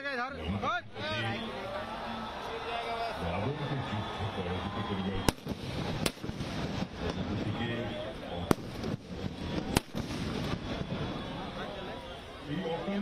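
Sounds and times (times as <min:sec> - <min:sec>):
firecrackers banging: 0:05.2 - 0:12.0
voices: 0:06.6 - 0:13.0.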